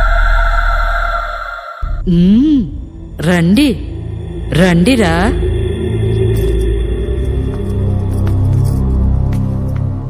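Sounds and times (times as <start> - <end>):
eerie electronic drone: 0.0 - 10.0
deep bass hum: 1.8 - 9.3.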